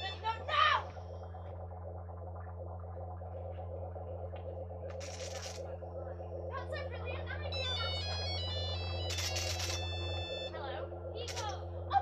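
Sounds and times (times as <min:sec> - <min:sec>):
low electrical hum: 0:00.0 - 0:12.0
high electronic beeping tones: 0:07.4 - 0:12.0.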